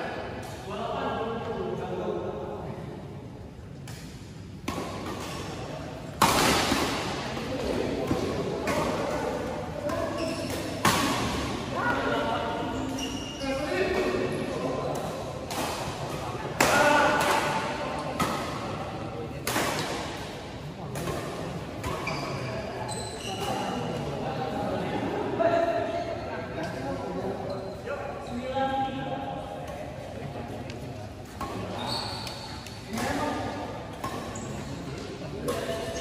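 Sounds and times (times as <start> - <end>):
racket hitting shuttlecock: 3.8 - 12.0
players' voices: 4.7 - 36.0.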